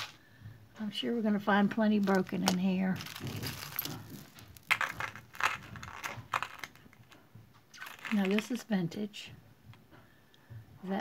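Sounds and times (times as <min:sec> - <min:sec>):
jewelry rustling: 0:00.0 - 0:00.2, 0:01.6 - 0:08.8.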